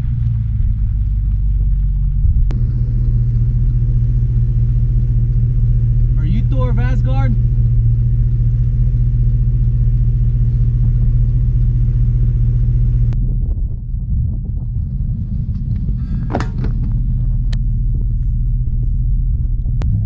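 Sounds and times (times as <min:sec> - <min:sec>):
car engine and tyres on gravel: 0:00.0 - 0:20.0.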